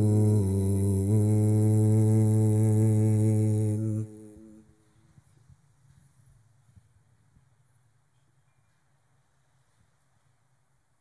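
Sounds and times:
man reciting melodically: 0:00.0 - 0:04.7
echo of voice: 0:00.0 - 0:04.9.

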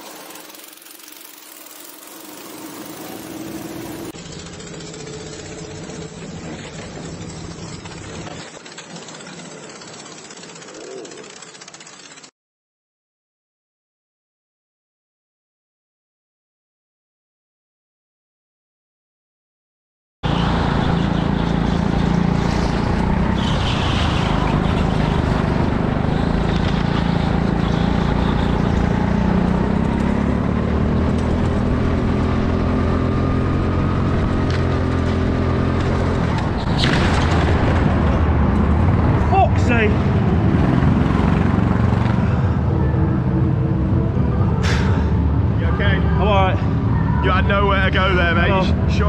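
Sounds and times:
go-kart engine running: 0:00.0 - 0:12.3, 0:20.2 - 0:49.0.

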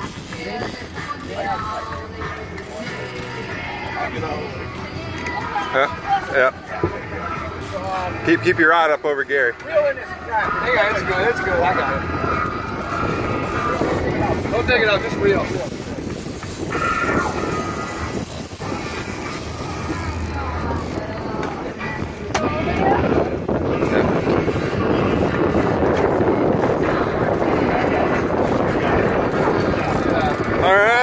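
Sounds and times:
boat motor: 0:00.0 - 0:31.0
faint voices: 0:00.0 - 0:31.0
wind: 0:00.0 - 0:31.0
rushing water: 0:10.3 - 0:31.0.

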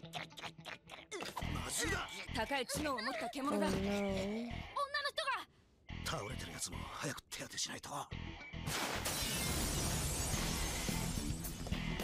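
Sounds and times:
loud crash effect: 0:08.7 - 0:11.4.

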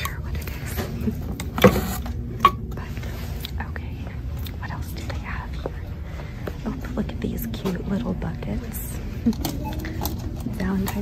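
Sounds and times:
shop background rumble: 0:00.0 - 0:11.0.

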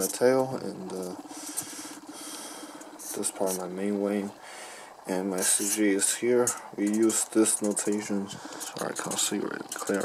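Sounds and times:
marker squeaking on paper: 0:03.0 - 0:03.7.

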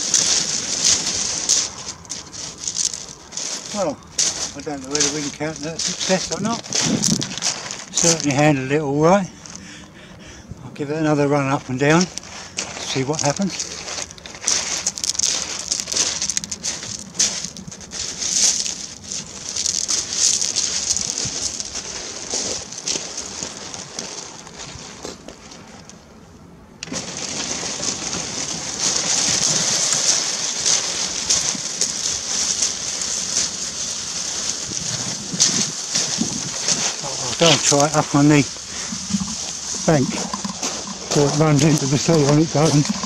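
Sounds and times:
shingle crunching underfoot: 0:00.0 - 0:26.2, 0:26.8 - 0:43.0.

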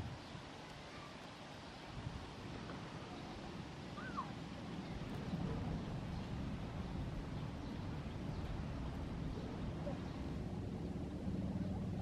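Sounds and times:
low outdoor rumble: 0:02.2 - 0:12.0.

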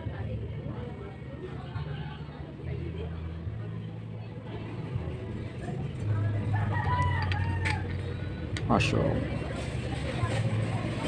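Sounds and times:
rooster crowing: 0:06.5 - 0:08.1.

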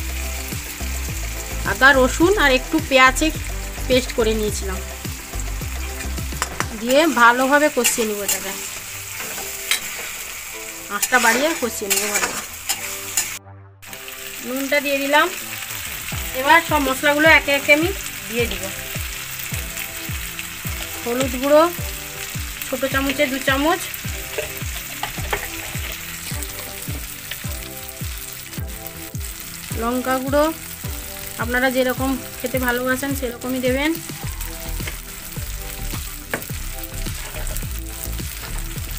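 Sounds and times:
background music with deep beat: 0:00.0 - 0:06.9, 0:15.6 - 0:38.9
masala sizzling in hot oil: 0:00.0 - 0:38.9
metal spatula scraping pan: 0:07.7 - 0:10.4, 0:11.0 - 0:13.4, 0:24.3 - 0:26.0.

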